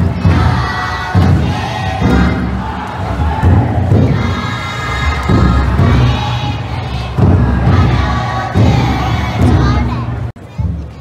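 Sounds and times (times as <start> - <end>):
crowd shouting a chant: 0.0 - 10.4
taiko drum beats: 0.0 - 11.0.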